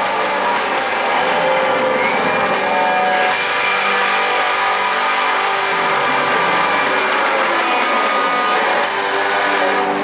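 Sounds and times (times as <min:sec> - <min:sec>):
electric guitar: 0:00.0 - 0:10.0
live pop-rock band: 0:00.0 - 0:10.0.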